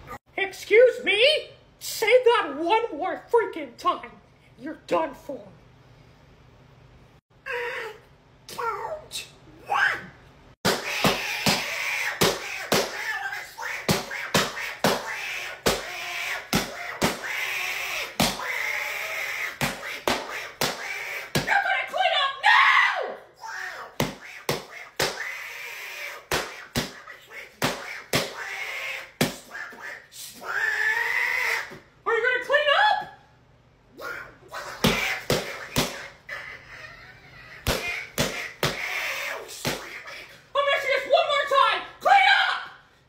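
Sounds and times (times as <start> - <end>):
man squawking cartoon voice: 7.4 - 33.2, 33.9 - 42.8.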